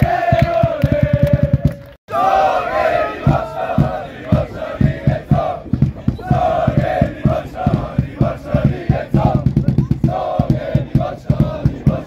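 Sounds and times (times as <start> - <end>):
men chanting and shouting: 0.0 - 12.0
low thumping beat: 3.2 - 12.0.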